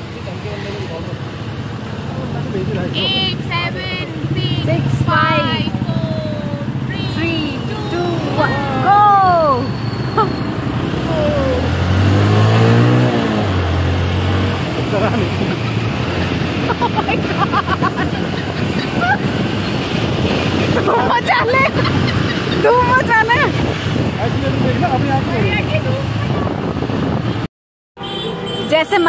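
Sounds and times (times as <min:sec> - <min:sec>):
wind and road noise: 0:00.0 - 0:29.0
scooter engine running: 0:02.2 - 0:09.5
vehicle accelerating past: 0:07.9 - 0:27.5.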